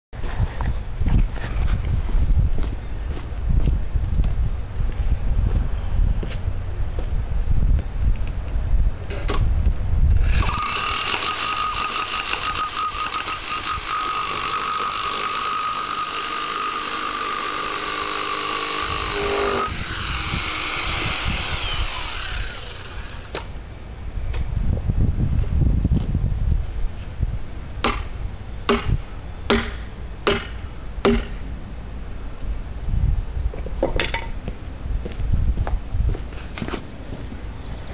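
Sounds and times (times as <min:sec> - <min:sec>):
motor winding down: 0:10.2 - 0:23.5
rotary hammer pounding: 0:10.2 - 0:23.5, 0:27.8 - 0:31.5.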